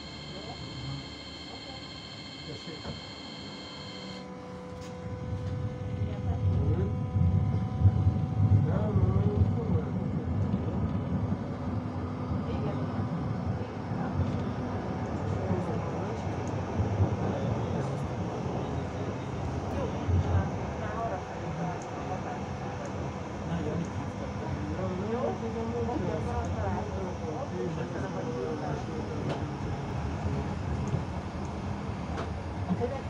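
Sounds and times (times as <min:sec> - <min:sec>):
steady high tones: 0:00.0 - 0:04.2
steady motor tone: 0:00.0 - 0:07.2.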